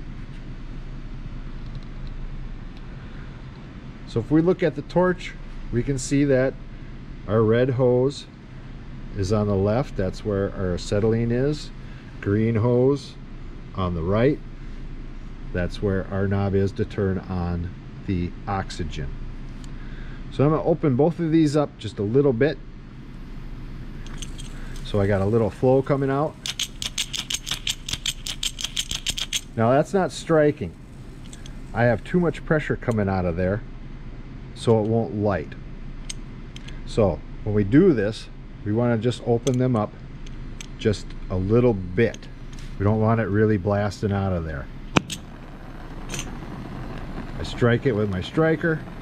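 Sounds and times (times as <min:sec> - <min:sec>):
gas hissing from torch tip: 0:23.0 - 0:26.9, 0:29.4 - 0:32.3, 0:44.8 - 0:49.0.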